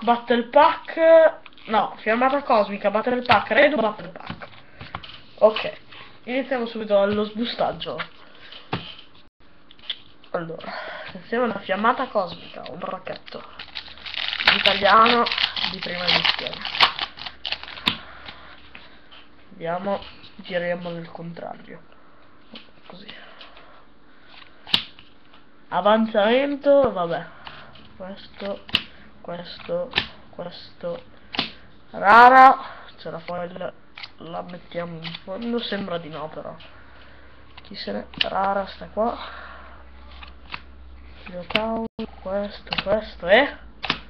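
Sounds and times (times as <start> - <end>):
foil pack crinkling: 13.1 - 17.9.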